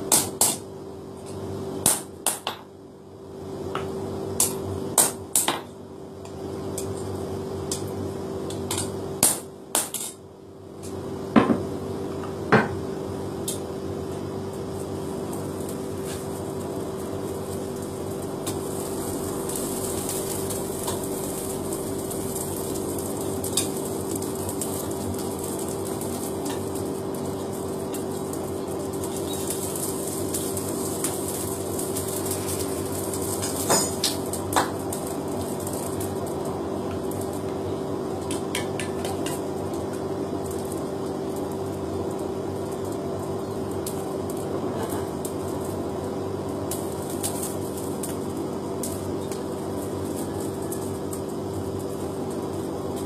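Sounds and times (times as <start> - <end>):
steady machine hum: 0.0 - 53.0.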